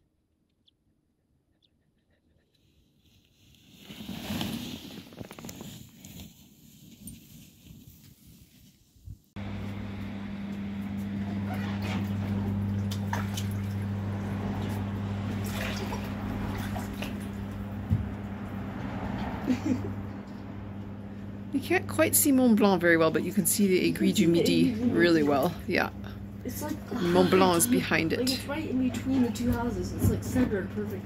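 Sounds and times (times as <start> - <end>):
skis hissing through snow: 3.2 - 8.1
hot tub pump humming: 9.4 - 31.0
water sloshing and dripping: 11.5 - 19.4.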